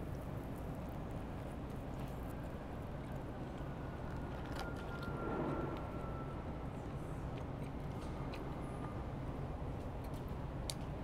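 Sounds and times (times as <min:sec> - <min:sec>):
city traffic rumble: 0:00.0 - 0:11.0.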